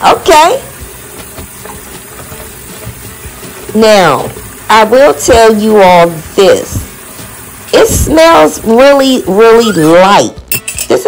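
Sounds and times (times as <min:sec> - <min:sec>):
faucet running into basin: 0:00.0 - 0:10.2
hands scrubbing sudsy dishcloth: 0:00.0 - 0:10.2.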